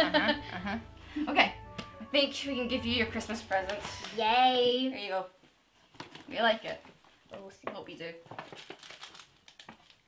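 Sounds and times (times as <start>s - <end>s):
foil gift bag crinkling: 8.3s - 10.0s.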